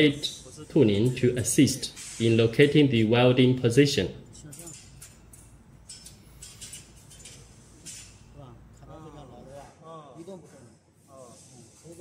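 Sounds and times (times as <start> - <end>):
metal strips clinking: 4.3 - 8.4.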